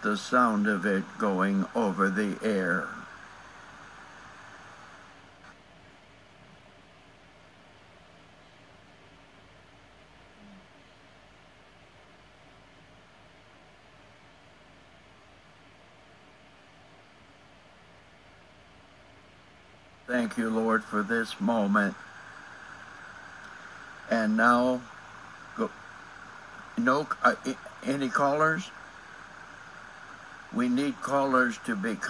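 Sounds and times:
faint steady hiss: 0.0 - 32.0.

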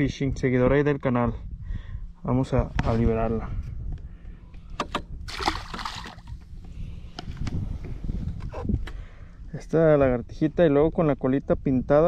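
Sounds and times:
fish splashing into water: 5.3 - 6.4.

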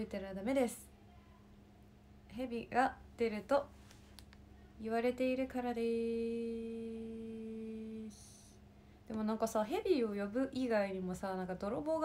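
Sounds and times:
soft breath hiss: 3.4 - 5.0, 6.0 - 9.4.

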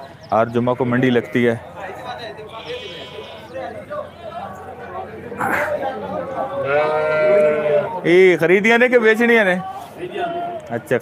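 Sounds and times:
sheep bleating: 2.5 - 3.7, 6.6 - 8.0.

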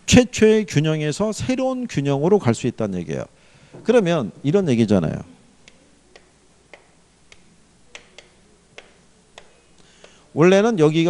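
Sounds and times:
chalk clicking on a chalkboard: 5.6 - 10.2.

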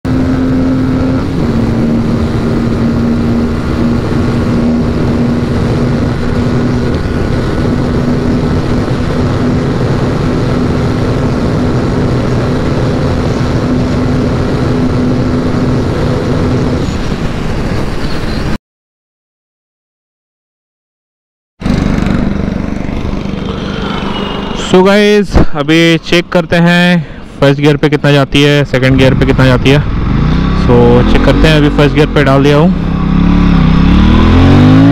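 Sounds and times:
motorcycle engine at high revs: 0.1 - 17.4, 21.6 - 24.7, 28.9 - 34.9
wind rush on microphone: 0.1 - 18.6.

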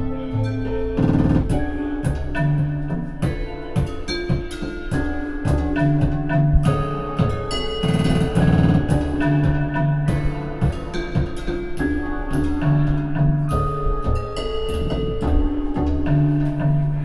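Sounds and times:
held low notes: 0.0 - 17.0
keyboard and electronic notes: 0.0 - 17.0
sharp drum hits: 1.0 - 2.6, 3.2 - 12.6.

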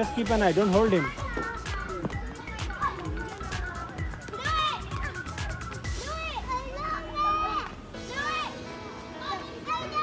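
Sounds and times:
background music: 0.0 - 10.0
children shouting at play: 0.0 - 10.0.

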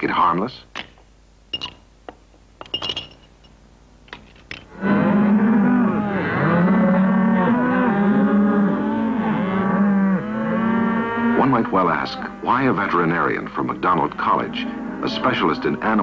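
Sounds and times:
cattle mooing: 4.7 - 16.0.

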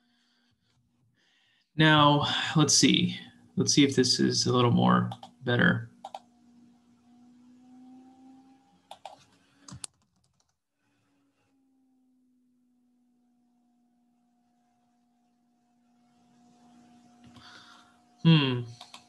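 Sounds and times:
faint electrical hum: 1.2 - 6.2
computer keyboard keystrokes: 8.9 - 10.5.

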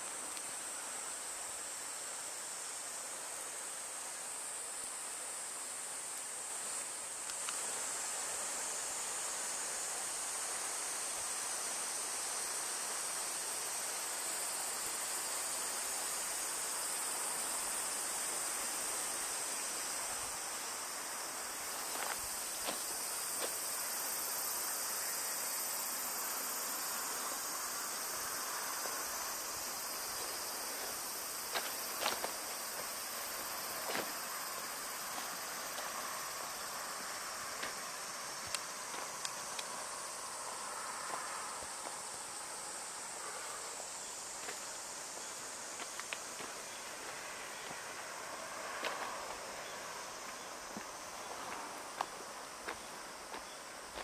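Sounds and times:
high-pitched insect chorus: 0.0 - 54.0.

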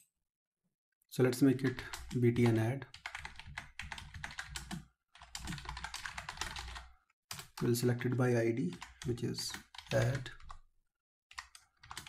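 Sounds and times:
rapid typing on keyboard: 1.6 - 10.6, 11.3 - 12.0.

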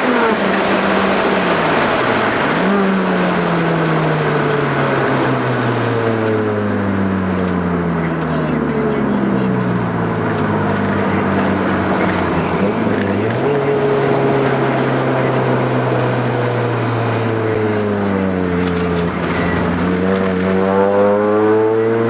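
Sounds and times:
car engine droning: 0.0 - 22.0.

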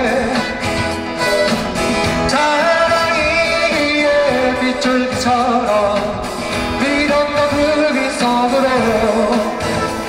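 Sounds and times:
acoustic guitar strumming: 0.0 - 10.0
band playing: 0.0 - 10.0
man singing into microphone: 0.0 - 10.0.

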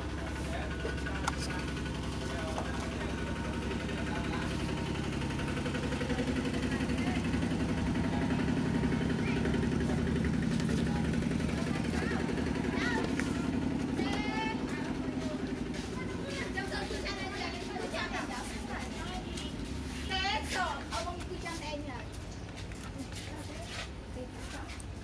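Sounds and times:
printer running steadily: 0.0 - 16.0.

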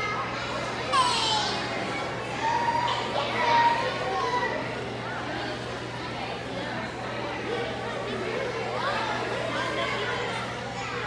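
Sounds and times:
children chattering: 0.0 - 11.0
loud high-pitched shout: 0.9 - 1.8.

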